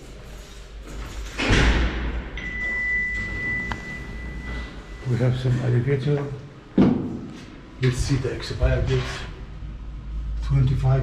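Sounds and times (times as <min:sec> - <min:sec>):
low hum: 0:02.1 - 0:11.0
high electronic tone: 0:02.4 - 0:05.4.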